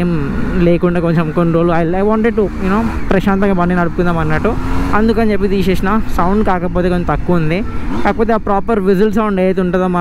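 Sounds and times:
man talking: 0.0s - 10.0s
motorcycle engine rumble: 0.0s - 10.0s.

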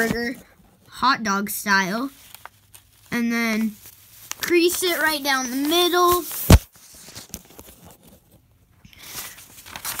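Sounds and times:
paper rustling and crinkling: 1.7s - 10.0s.

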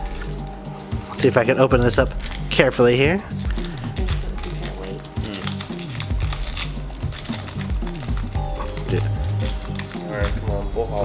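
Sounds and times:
background music with bass line: 0.0s - 11.0s
foil wrapper crinkling and tearing: 0.0s - 11.0s.

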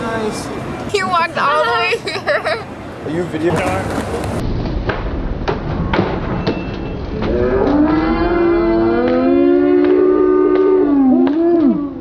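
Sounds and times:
skateboard wheels rolling on concrete: 3.0s - 7.8s
person howling: 7.4s - 12.0s.

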